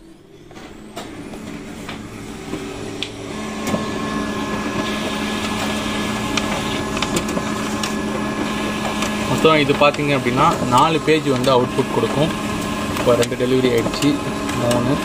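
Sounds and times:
photocopier motors humming and whining: 0:00.0 - 0:15.0
paper-feed mechanism clicks: 0:04.8 - 0:15.0.

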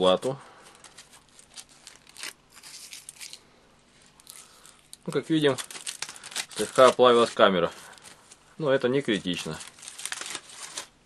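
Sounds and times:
aluminium foil crinkling: 0:00.0 - 0:03.5, 0:04.1 - 0:11.0.

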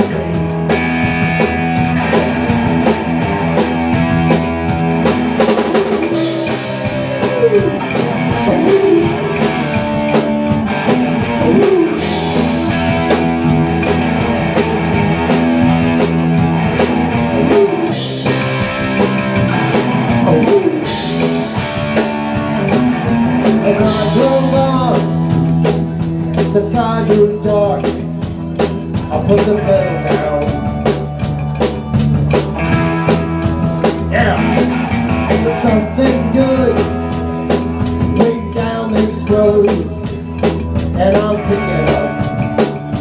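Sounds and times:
live rock band playing: 0:00.0 - 0:43.0.

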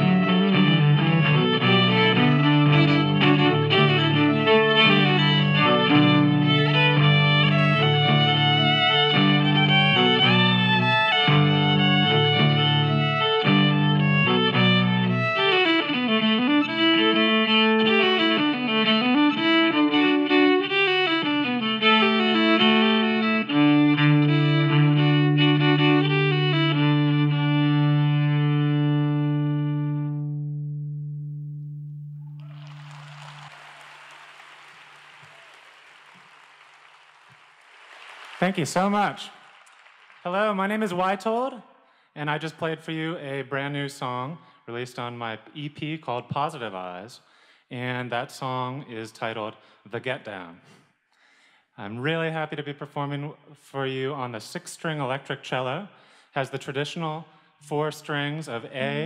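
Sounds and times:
soft applause: 0:00.0 - 0:15.7, 0:32.4 - 0:41.6
bowed electric cello with loops: 0:00.0 - 0:32.4.

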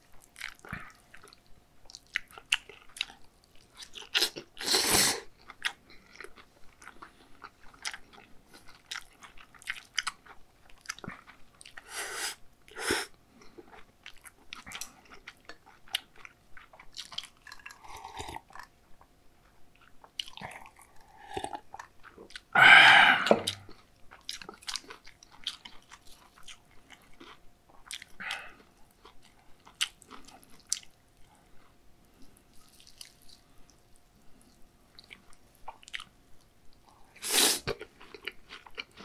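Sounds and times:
wet chewing: 0:00.0 - 0:11.9, 0:13.4 - 0:22.5, 0:23.3 - 0:36.9.

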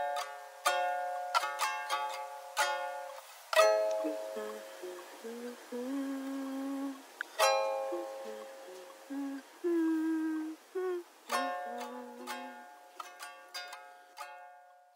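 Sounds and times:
ukulele chords strummed: 0:00.0 - 0:14.9
person humming melody: 0:03.6 - 0:14.4.

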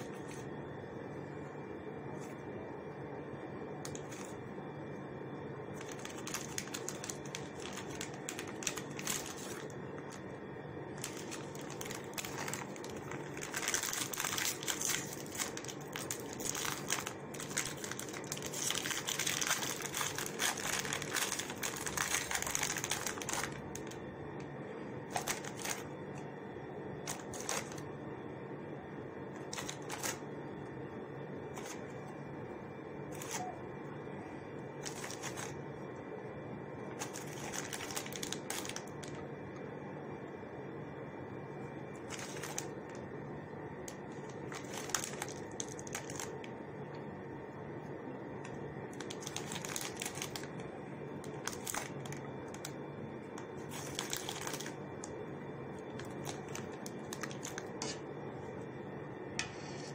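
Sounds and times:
steady low hum: 0:00.0 - 0:59.9
plastic wrappers crinkling: 0:03.9 - 0:04.4, 0:05.8 - 0:24.0, 0:25.0 - 0:26.2, 0:27.0 - 0:27.8, 0:29.4 - 0:30.2, 0:31.5 - 0:31.8, 0:33.1 - 0:33.6, 0:34.8 - 0:35.6, 0:36.9 - 0:39.2, 0:42.0 - 0:43.0, 0:43.8 - 0:46.5, 0:48.4 - 0:55.2, 0:55.8 - 0:58.0.

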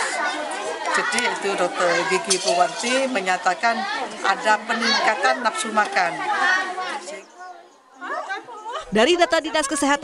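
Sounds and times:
woman speaking: 0:08.4 - 0:10.0.

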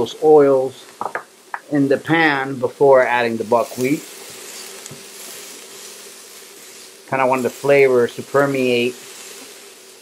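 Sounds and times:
food sizzling in oil: 0:00.0 - 0:10.0
spatula stirring in pan: 0:03.5 - 0:10.0.

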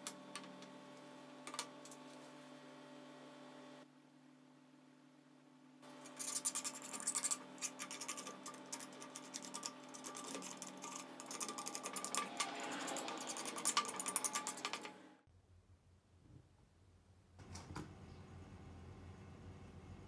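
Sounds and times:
knife scraping paint off metal: 0:06.0 - 0:14.9.

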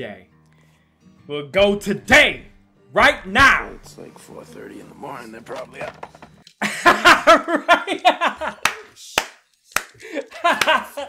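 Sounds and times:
man laughing hard: 0:06.6 - 0:08.9, 0:10.0 - 0:11.0
sharp hand claps: 0:08.4 - 0:11.0.

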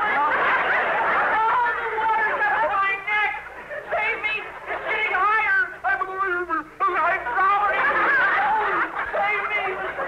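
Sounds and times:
audience laughing: 0:00.0 - 0:05.5, 0:07.0 - 0:10.0.

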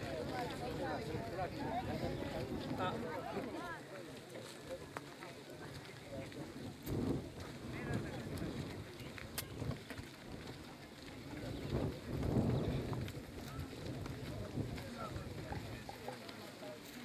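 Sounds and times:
wind rumbling on microphone: 0:00.0 - 0:03.5, 0:05.6 - 0:16.1.

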